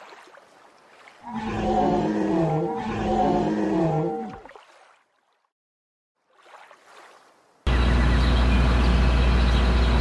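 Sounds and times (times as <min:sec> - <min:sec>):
recorded dinosaur roar: 0:01.2 - 0:04.4.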